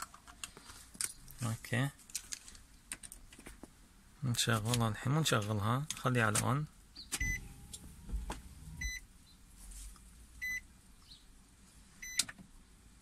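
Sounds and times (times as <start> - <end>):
low hum: 7.2 - 9.1.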